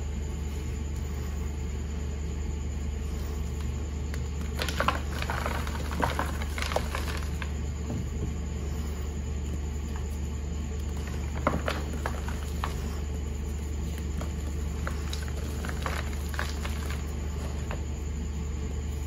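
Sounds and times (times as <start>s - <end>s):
steady low hum: 0.0s - 19.0s
chalk blocks crushed by hand: 4.4s - 8.0s, 10.9s - 13.0s, 14.0s - 17.9s.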